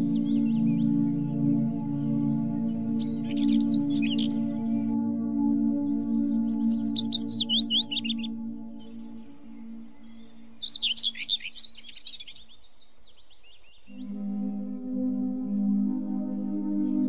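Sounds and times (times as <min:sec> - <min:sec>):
sustained low musical tone: 0:00.0 - 0:11.3, 0:13.9 - 0:17.0
songbird singing: 0:00.0 - 0:17.0.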